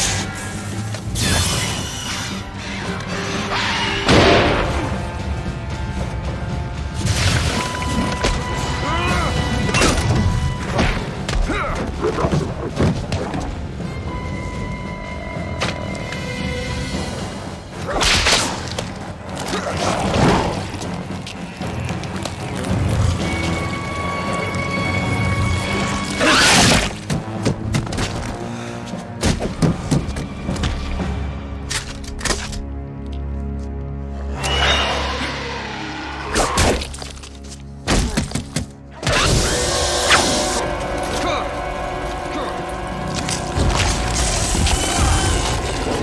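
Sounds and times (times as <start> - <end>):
film soundtrack music: 0.0 - 46.0.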